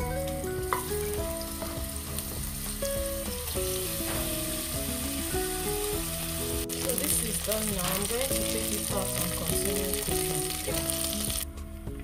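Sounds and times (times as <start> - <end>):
food sizzling in oil: 0.0 - 11.6
background music: 0.0 - 12.0.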